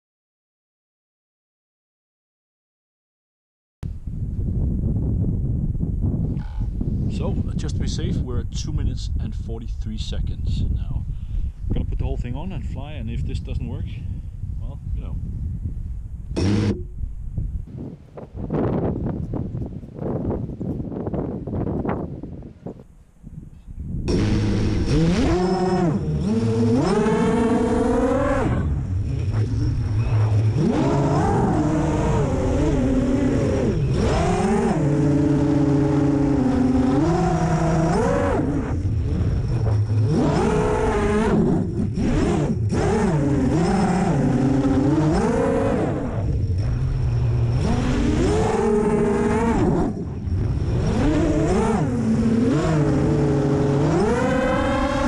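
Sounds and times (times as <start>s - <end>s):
wind noise: 3.8s - 55.0s
quadcopter motors whining: 16.4s - 16.9s, 24.1s - 55.0s.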